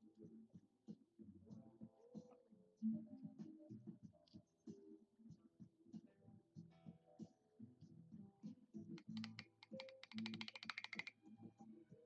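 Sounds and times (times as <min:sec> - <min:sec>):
faint low background music: 0:00.0 - 0:12.0
sharp clicks: 0:09.0 - 0:11.1.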